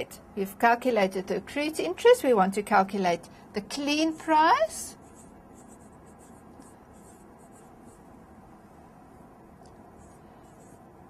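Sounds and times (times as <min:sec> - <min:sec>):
low room hum: 0:00.0 - 0:11.0
pen scratching while writing: 0:05.0 - 0:08.1, 0:09.6 - 0:10.9.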